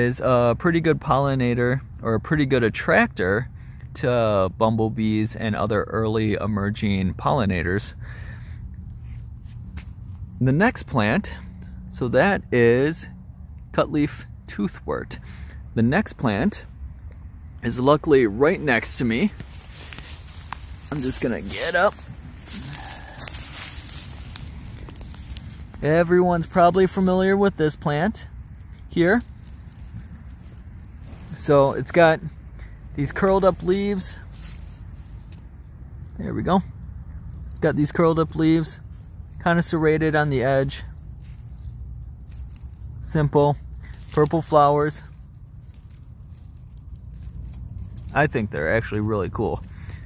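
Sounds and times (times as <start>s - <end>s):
dry leaves and twigs crackling: 7.5s - 12.0s, 14.1s - 50.0s.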